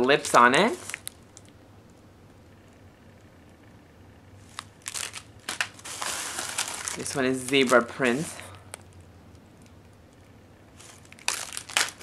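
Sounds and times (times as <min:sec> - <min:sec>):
plastic packaging crinkling: 0:00.0 - 0:01.5, 0:04.4 - 0:09.0, 0:10.8 - 0:12.0.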